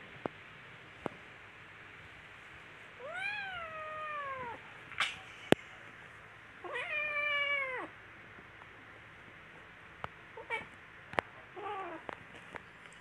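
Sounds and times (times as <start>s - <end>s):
kitten meowing: 3.0s - 4.6s, 6.6s - 7.9s.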